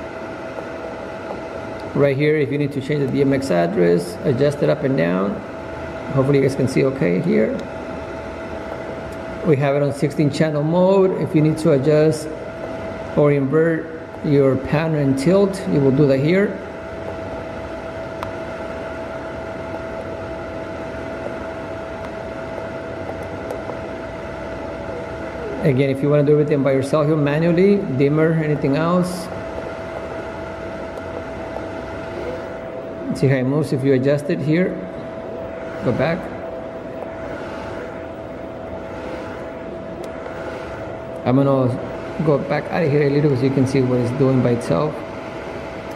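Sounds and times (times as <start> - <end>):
cooling fans whirring hum: 0.0 - 45.9.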